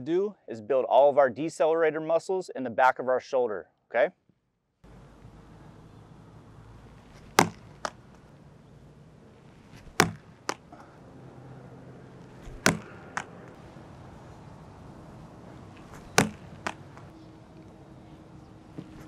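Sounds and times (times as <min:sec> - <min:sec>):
ball hitting a wall: 0:07.1 - 0:08.2, 0:09.7 - 0:10.8, 0:12.2 - 0:13.6, 0:15.8 - 0:17.1, 0:18.7 - 0:19.0
ball dropping onto concrete: 0:12.5 - 0:13.4, 0:16.0 - 0:17.1.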